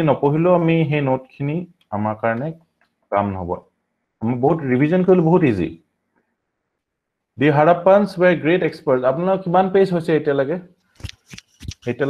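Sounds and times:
man lecturing: 0.0s - 5.8s, 7.4s - 10.7s.

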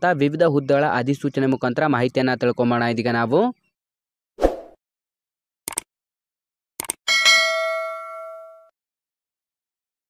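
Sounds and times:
notification bell ding: 7.1s - 8.7s.

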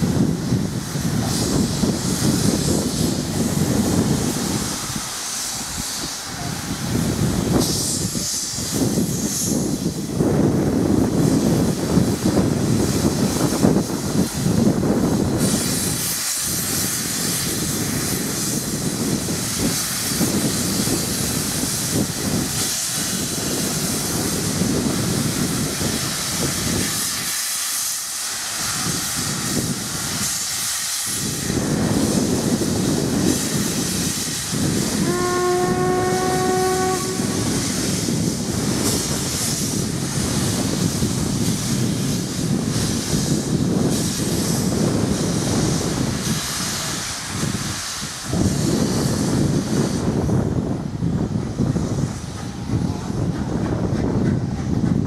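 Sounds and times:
loud hiss of steam: 0.0s - 55.0s
steam locomotive whistle: 34.9s - 38.0s.

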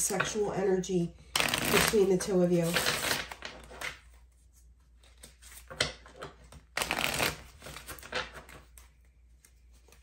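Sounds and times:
cards being shuffled: 2.6s - 10.0s.

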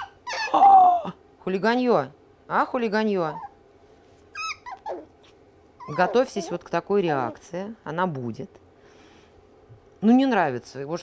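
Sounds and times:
puppy whining: 0.0s - 1.0s, 3.2s - 3.6s, 4.3s - 7.5s.

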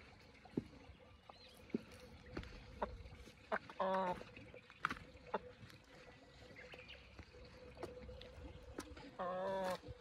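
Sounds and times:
chicken clucking: 2.7s - 4.4s, 8.8s - 10.0s.

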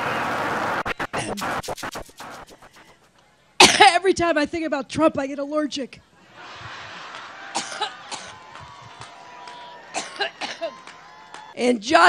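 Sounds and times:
woman coughing: 3.6s - 4.0s, 7.6s - 8.4s, 10.0s - 10.7s.

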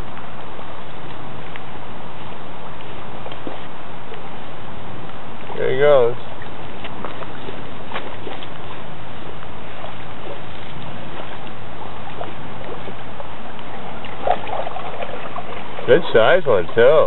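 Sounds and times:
rain hissing on shallow water: 0.0s - 17.0s.

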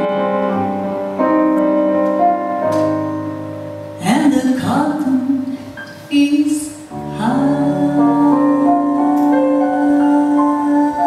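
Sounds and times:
piano chords: 0.0s - 11.0s
woman singing: 4.0s - 11.0s
double bass line: 6.4s - 11.0s.

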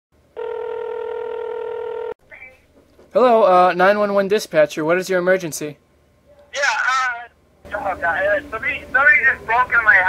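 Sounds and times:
telephone ringing: 0.3s - 2.2s.

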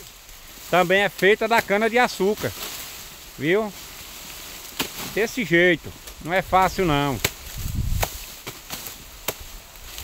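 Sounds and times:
machete chopping sugarcane: 1.1s - 3.0s, 4.5s - 6.3s, 6.9s - 10.0s.

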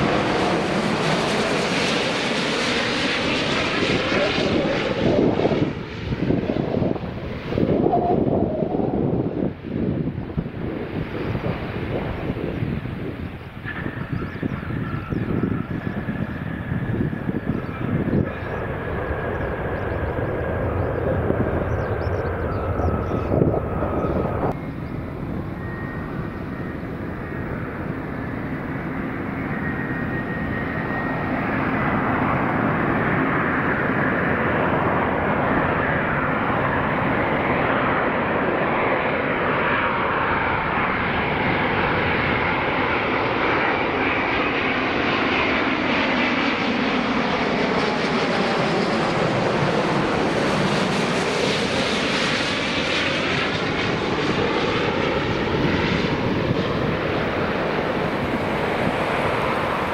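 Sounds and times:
jet airliner engines whining: 0.0s - 59.9s.

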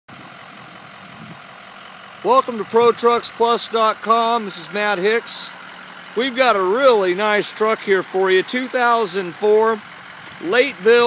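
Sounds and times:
faint vehicle engine running: 0.1s - 11.0s.

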